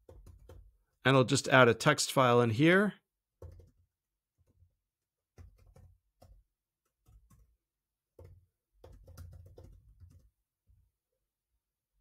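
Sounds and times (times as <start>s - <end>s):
typing on computer keyboard: 0.0s - 0.8s, 3.4s - 10.4s.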